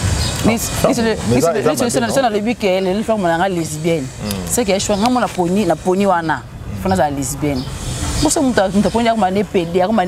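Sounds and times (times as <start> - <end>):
woman speaking: 0.4 - 10.0.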